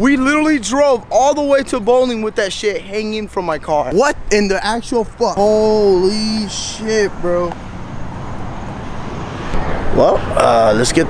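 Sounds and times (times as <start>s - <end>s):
low roadside rumble: 0.0s - 11.0s.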